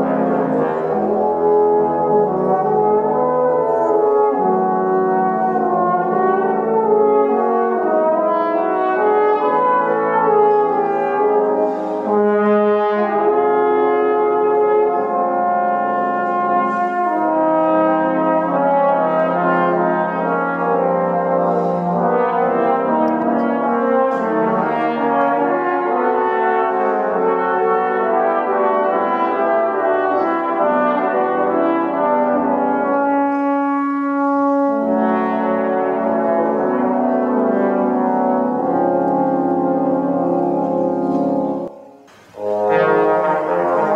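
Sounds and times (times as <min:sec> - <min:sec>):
trombones playing jazz chords: 0:00.0 - 0:43.9.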